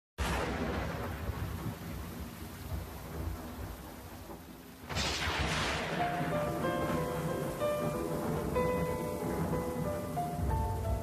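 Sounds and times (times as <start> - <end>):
low rumble and hiss: 0.4 - 11.0.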